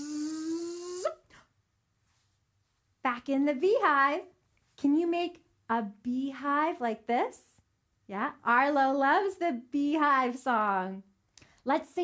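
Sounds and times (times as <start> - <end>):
woman imitating bee buzzing: 0.0 - 1.3.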